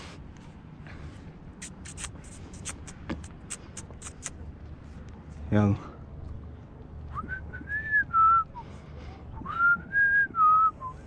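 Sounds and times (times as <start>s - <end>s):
person whistling: 9.4s - 11.0s.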